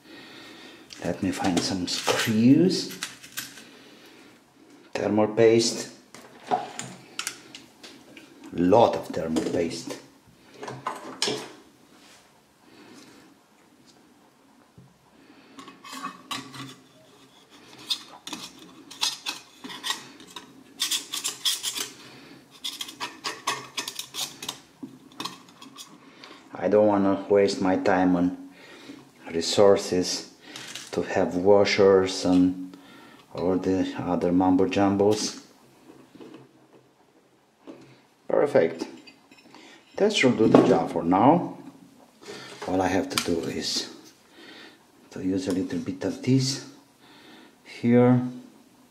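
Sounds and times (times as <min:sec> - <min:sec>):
hands rubbing and scraping metal plate: 0:15.6 - 0:26.0.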